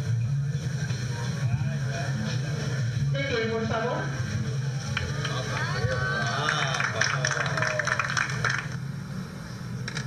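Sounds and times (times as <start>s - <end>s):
faint voices talking: 0.5s - 8.1s.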